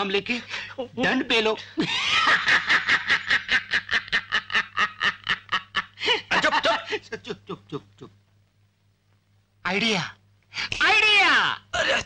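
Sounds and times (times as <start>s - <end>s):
man laughing loudly: 1.8s - 7.9s.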